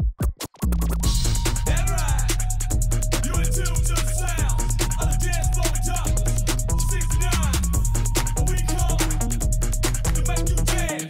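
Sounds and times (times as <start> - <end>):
hip-hop beat: 0.0 - 11.0
turntable scratching: 0.0 - 11.0.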